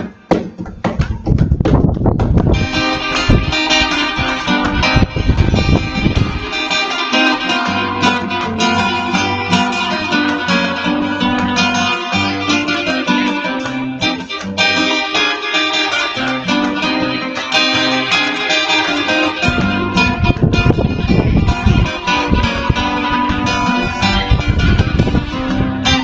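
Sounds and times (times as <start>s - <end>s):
acoustic guitar solo: 0.0s - 26.0s.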